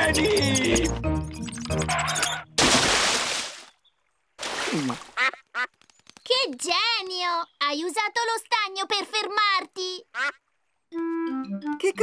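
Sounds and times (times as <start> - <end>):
cartoon music: 0.0 - 2.6, 11.0 - 12.0
heavy splash into pond: 2.6 - 3.7, 4.4 - 5.2.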